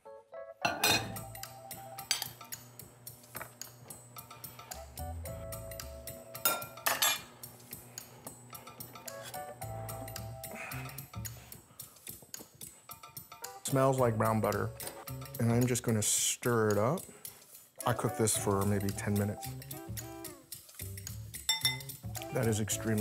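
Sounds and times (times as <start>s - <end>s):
background music with held notes: 0.0s - 23.0s
utensils clinking against glass bowl: 0.7s - 1.2s, 6.4s - 7.3s, 21.5s - 22.0s.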